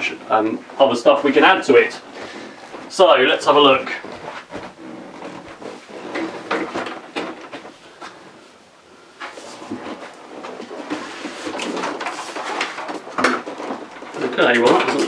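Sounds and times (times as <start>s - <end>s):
knocks clicks and scrapes of climbing: 0.0s - 8.4s, 9.2s - 15.0s.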